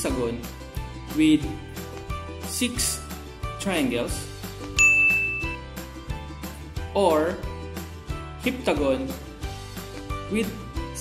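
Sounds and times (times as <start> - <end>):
background music: 0.0 - 11.0
bright ding: 4.8 - 5.6.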